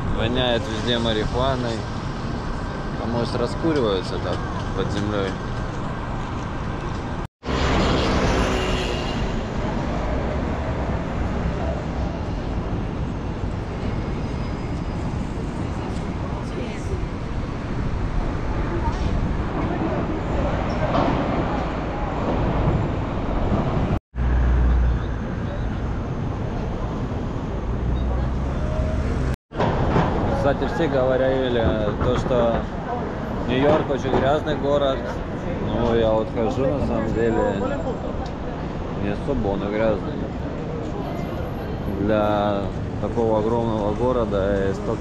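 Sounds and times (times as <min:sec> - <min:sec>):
traffic noise: 0:00.0 - 0:45.0
passers-by talking: 0:18.4 - 0:22.8, 0:30.2 - 0:45.0.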